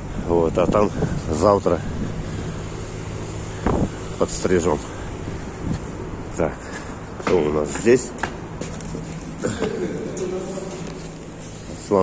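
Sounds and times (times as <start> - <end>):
outdoor rumble: 0.0 - 11.7.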